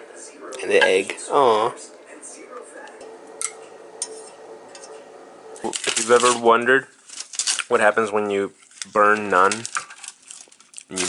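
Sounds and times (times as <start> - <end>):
faint hum: 0.0 - 6.9.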